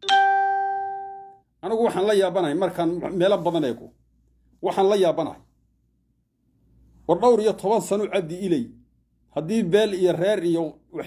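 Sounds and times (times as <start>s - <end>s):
chime ringing: 0.0s - 1.4s.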